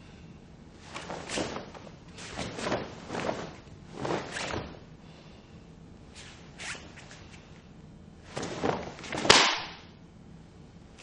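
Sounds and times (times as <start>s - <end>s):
cloth uniform swishing: 0.8s - 5.0s, 6.1s - 7.3s, 8.2s - 9.8s
sharp snap of uniform: 8.4s - 9.9s.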